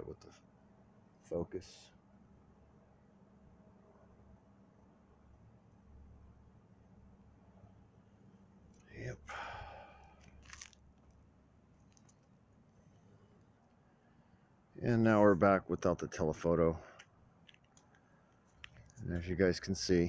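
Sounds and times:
faint low background hum: 0.0 - 20.0
man saying a word: 8.9 - 9.5
short breathy noise: 9.3 - 10.4.

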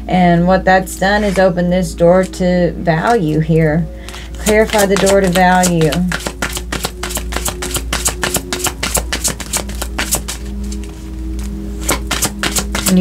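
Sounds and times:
soft background music: 0.0 - 13.0
cards being shuffled: 4.1 - 13.0.

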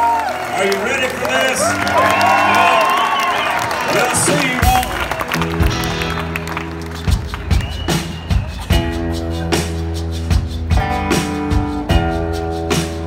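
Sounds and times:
crowd noise: 0.0 - 13.0
held guitar chords: 4.2 - 13.0.

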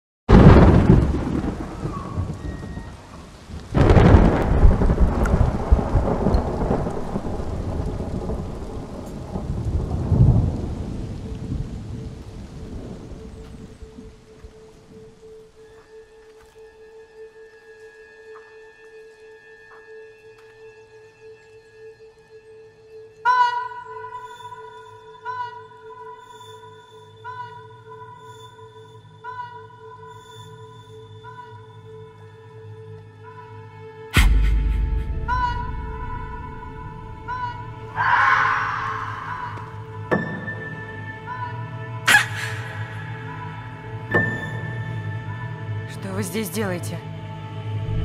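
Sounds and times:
thunder rumbling: 0.3 - 15.2, 34.2 - 46.4
eerie film music: 0.5 - 48.0.

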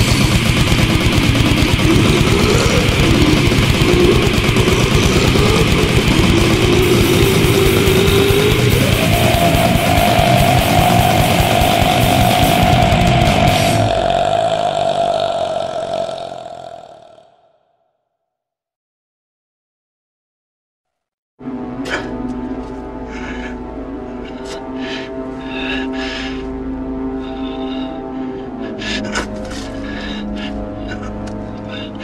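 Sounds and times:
fast drums: 0.0 - 14.5
death metal band playing: 0.0 - 17.1
distorted guitars and bass: 0.0 - 17.2.

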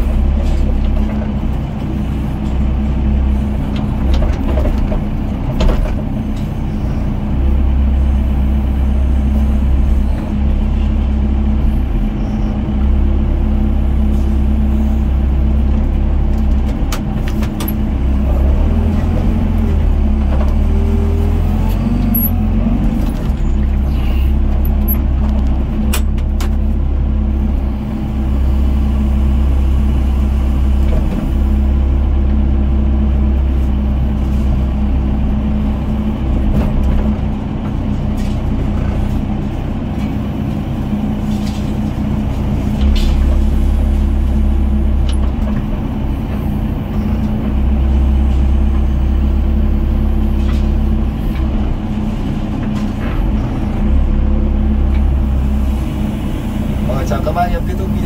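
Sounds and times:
excavator diesel engine running: 0.0 - 58.0.

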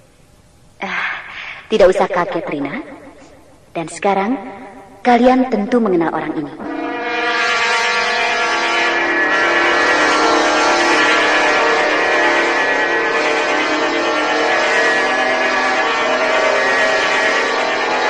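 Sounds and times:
layered tonal drone: 1.7 - 3.6.

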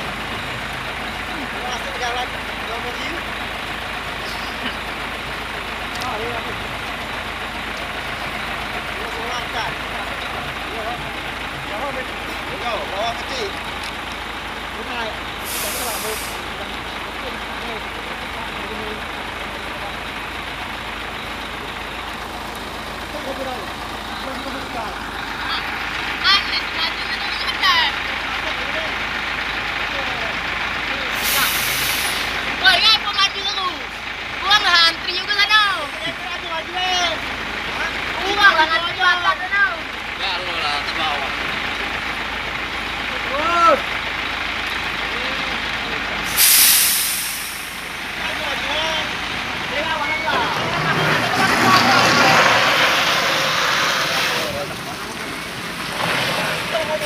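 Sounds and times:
diesel truck engine running: 0.0 - 57.0
voices and laughter: 4.1 - 5.6
air brake hisses: 15.4 - 16.5, 31.1 - 32.4, 46.2 - 48.0.

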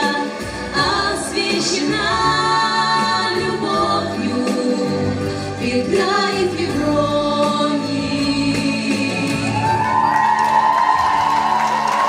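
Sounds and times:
women singing in harmony: 0.0 - 10.0
musical accompaniment: 0.0 - 12.0.

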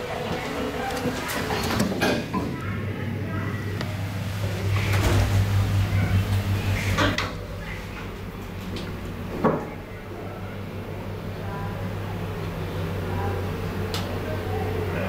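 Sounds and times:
elevator low hum: 0.0 - 15.0.

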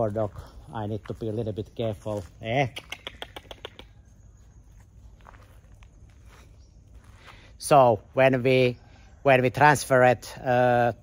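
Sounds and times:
footsteps on gravel: 0.0 - 2.8, 4.4 - 8.0.

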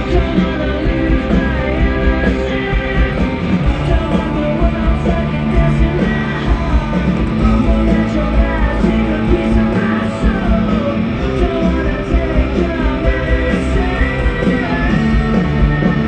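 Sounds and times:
distorted electric guitars: 0.0 - 16.0
male lead vocal: 0.0 - 16.0.

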